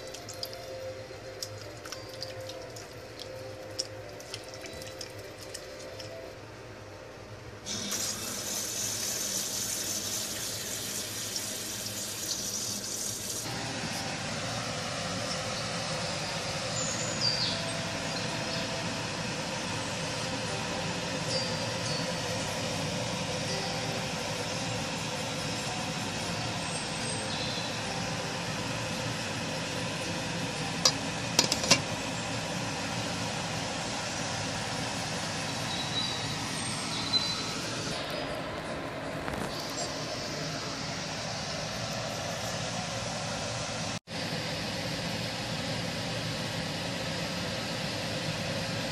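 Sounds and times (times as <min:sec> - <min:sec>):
tap water running into pot: 0:01.4 - 0:06.1, 0:07.7 - 0:13.5.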